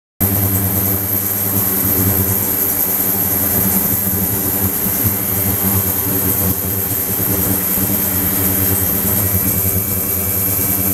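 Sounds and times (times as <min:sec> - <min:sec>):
loud mechanical hum: 0:00.2 - 0:10.9.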